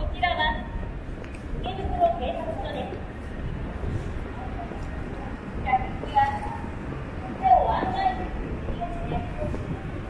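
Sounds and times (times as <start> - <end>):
distant voices: 0.0 - 10.0
low street rumble: 0.0 - 10.0.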